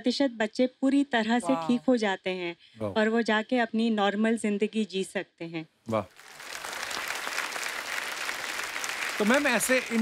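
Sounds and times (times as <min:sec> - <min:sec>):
studio audience applauding: 0:06.0 - 0:10.0.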